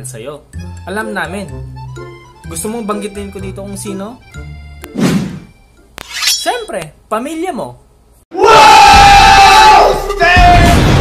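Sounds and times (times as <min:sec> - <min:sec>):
quiet background music: 0:00.0 - 0:07.0.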